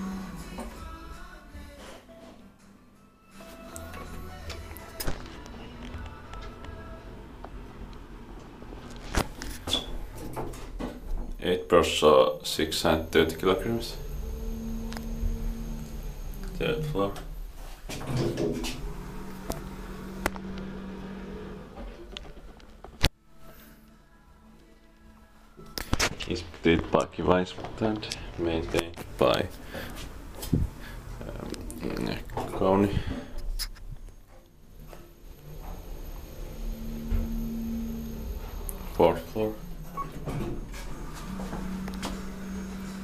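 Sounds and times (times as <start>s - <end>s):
elevator door motor humming: 3.6s - 22.8s, 28.9s - 43.0s.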